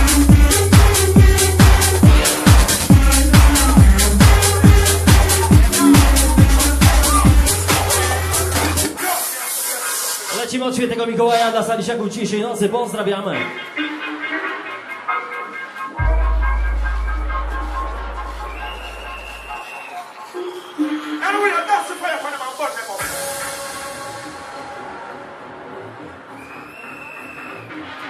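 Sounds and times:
club dance music: 0.0s - 28.0s
person speaking over music: 10.3s - 13.6s, 21.1s - 23.1s.

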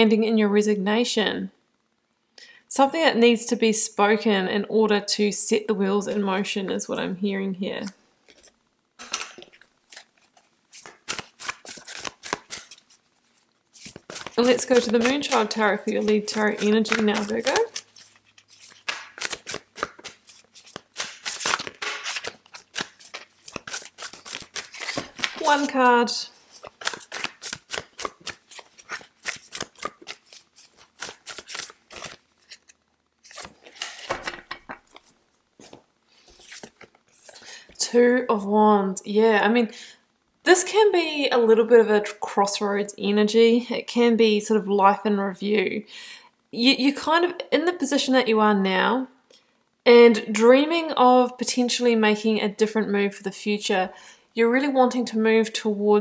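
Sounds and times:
cards rustling: 8.3s - 37.8s
card snaps and flicks: 18.8s - 22.9s.

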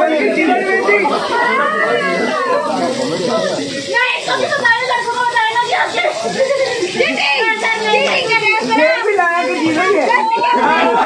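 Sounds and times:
young men talking and calling out: 0.0s - 11.0s.

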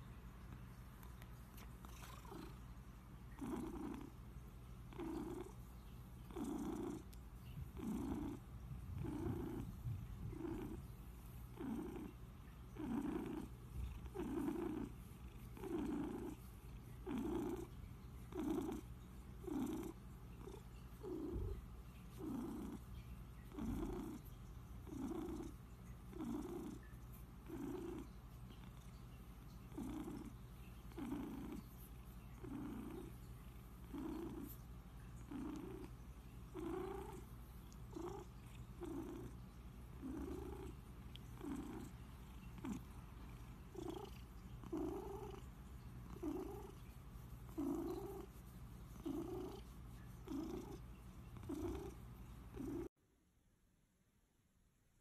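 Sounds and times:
cat purring: 0.0s - 52.9s.

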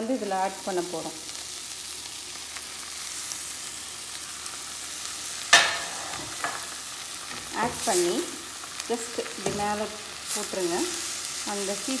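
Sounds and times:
leaves sizzling in a frying pan: 0.0s - 12.0s
metal spatula clattering on pan: 5.5s - 6.7s.

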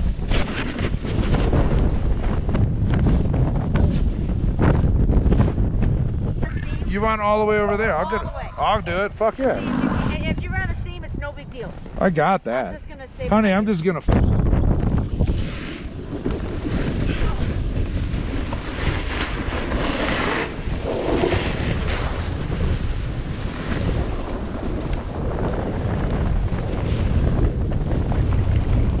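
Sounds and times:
snowboard scraping on packed snow: 0.0s - 4.4s, 9.2s - 10.3s, 15.1s - 29.0s
wind rushing over microphone: 0.0s - 29.0s.

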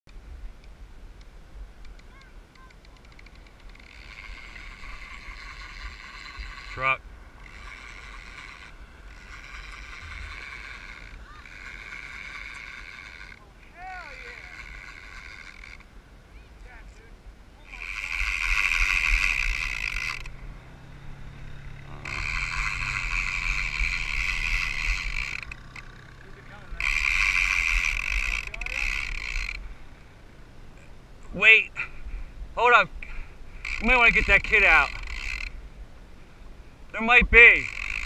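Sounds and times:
fishing reel drag clicking: 2.6s - 13.4s, 14.1s - 15.9s, 17.6s - 20.3s, 21.7s - 26.2s, 26.8s - 29.7s, 33.0s - 35.6s, 37.6s - 38.0s.

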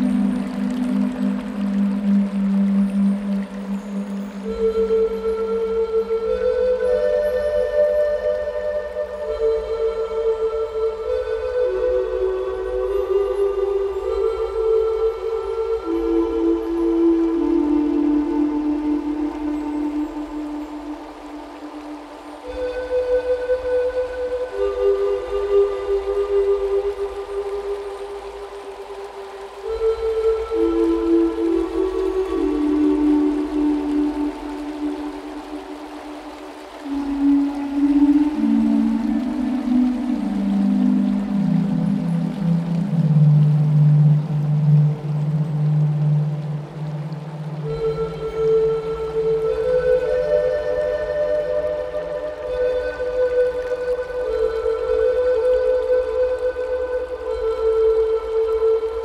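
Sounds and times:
slow flute music: 0.0s - 59.0s.

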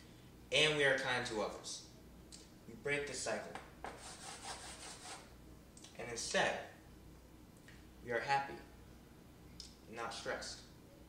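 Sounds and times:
chalk scraping on blackboard: 3.8s - 5.3s.

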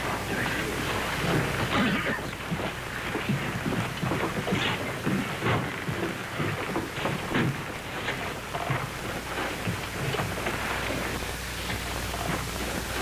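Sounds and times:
footsteps: 0.0s - 13.0s.

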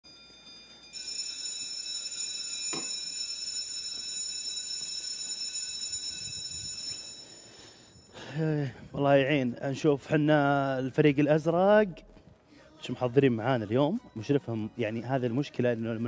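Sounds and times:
electric school bell ringing: 0.0s - 8.4s.

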